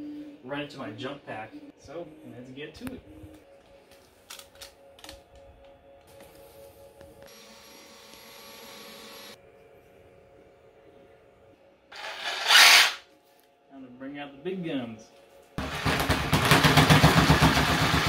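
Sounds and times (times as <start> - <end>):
faint steady music tone: 0.0 - 12.0, 13.0 - 15.6
electric power tool burst: 12.0 - 13.0.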